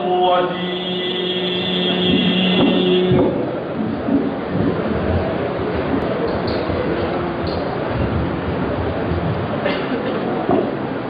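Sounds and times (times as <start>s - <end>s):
rumbling of large hall: 0.0s - 11.0s.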